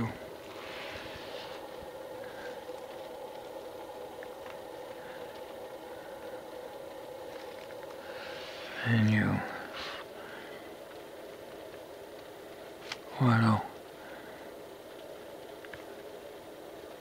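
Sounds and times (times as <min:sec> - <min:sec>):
machine hum: 0:00.0 - 0:17.0
faint clicks: 0:01.7 - 0:08.2, 0:13.7 - 0:17.0.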